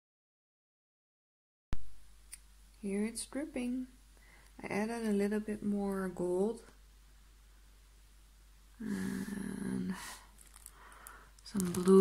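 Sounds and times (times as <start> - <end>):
short breath: 4.2 - 4.6, 10.0 - 11.4
woman humming: 8.8 - 10.0.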